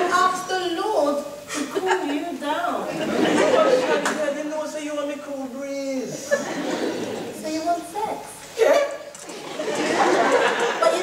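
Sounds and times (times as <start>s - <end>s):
audience chatter: 1.7s - 11.0s
audience laughter: 2.9s - 4.2s, 6.2s - 7.3s, 9.3s - 11.0s.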